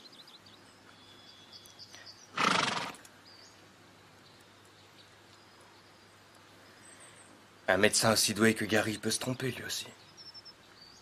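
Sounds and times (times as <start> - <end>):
horse whinnying: 2.4 - 3.0.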